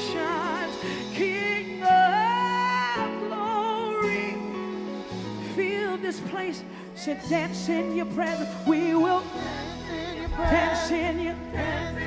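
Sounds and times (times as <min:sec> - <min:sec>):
group singing with vibrato: 0:00.0 - 0:03.1, 0:05.4 - 0:12.0
live band playing: 0:00.0 - 0:12.0
low bass: 0:09.3 - 0:12.0
drum beats: 0:09.4 - 0:12.0.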